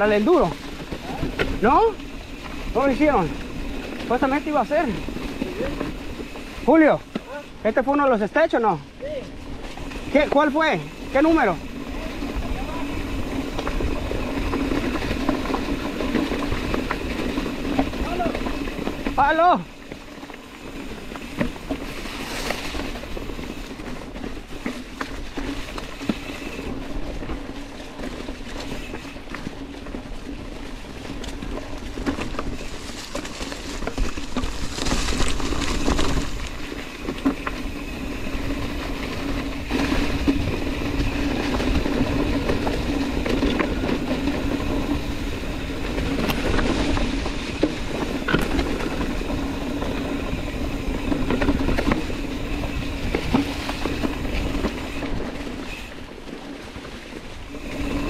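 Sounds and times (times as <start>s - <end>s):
bike rattles and knocks: 0.0s - 58.0s
bike tyres rolling on dry leaves: 0.0s - 58.0s.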